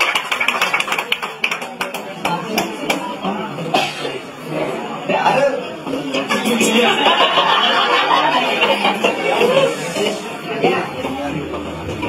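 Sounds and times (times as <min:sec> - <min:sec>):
audience clapping: 0:00.0 - 0:03.1.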